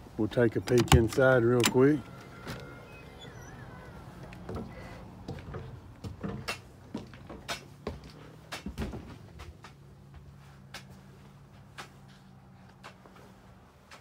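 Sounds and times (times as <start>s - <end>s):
footsteps on steps: 4.2s - 14.0s.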